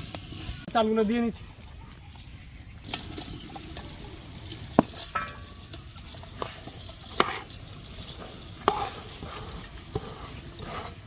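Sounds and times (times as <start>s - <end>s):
chicken sizzling in a pot: 0.0s - 11.0s.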